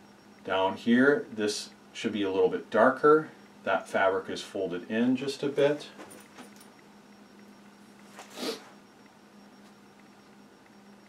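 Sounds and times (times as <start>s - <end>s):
faint steady hum: 0.0s - 11.0s
man's sniff: 8.2s - 8.8s.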